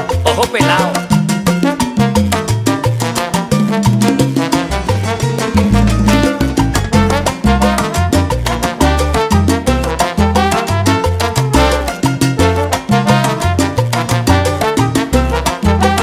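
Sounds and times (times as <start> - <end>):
bass line: 0.0 - 16.0
salsa band playing: 0.0 - 16.0
steady percussion: 0.0 - 16.0.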